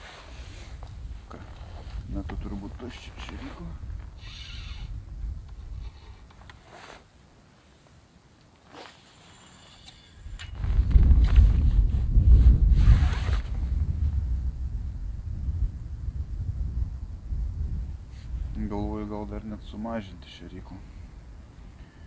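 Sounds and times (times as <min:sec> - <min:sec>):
wind buffeting microphone: 0:00.0 - 0:06.6, 0:10.2 - 0:22.0.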